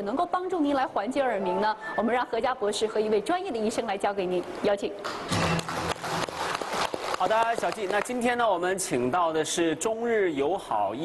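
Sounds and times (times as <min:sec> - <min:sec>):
audience applauding: 0:05.1 - 0:08.4.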